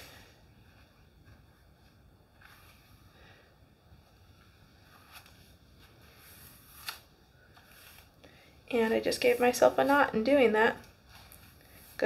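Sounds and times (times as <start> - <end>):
brush on wet hair: 4.0 - 12.0.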